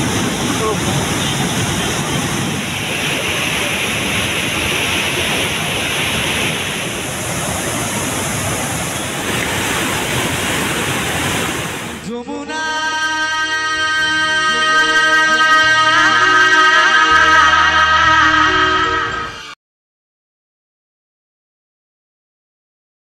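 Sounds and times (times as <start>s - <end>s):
water rushing through dam gates: 0.0s - 12.0s
music: 12.0s - 19.6s.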